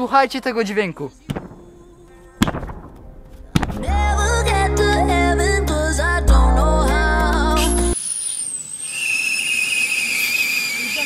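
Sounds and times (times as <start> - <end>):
bass-heavy background music: 0.8 - 8.0
hand slapping inflated ball: 3.5 - 3.8.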